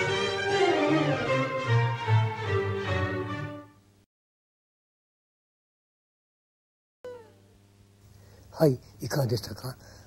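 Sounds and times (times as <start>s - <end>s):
brief tone: 7.0s - 7.5s
faint low hum: 7.1s - 10.0s.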